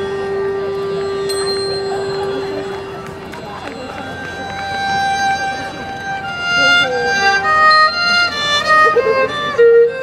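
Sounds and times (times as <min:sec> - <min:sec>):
held note: 0:00.0 - 0:05.5
violin long steady note: 0:00.0 - 0:10.0.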